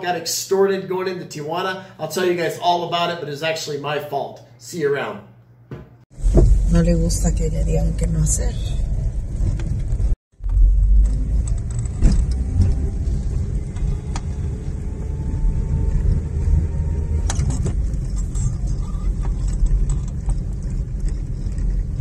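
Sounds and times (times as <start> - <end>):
car engine and road rumble: 6.2 - 22.0
faint clicks and rattles: 17.3 - 22.0.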